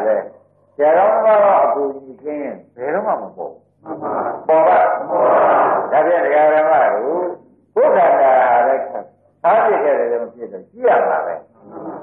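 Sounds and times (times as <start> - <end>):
monk preaching: 0.0 - 11.7.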